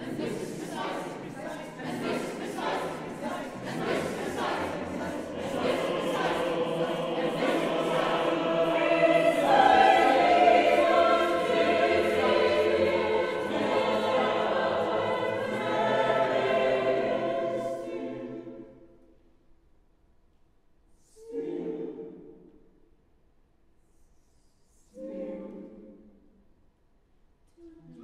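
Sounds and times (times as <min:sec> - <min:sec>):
mixed choir singing chords: 0:00.0 - 0:19.2, 0:21.0 - 0:22.9, 0:24.8 - 0:26.5.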